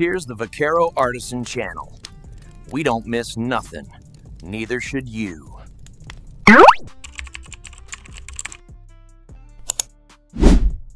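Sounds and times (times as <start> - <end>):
soft background music: 0.0 - 10.3.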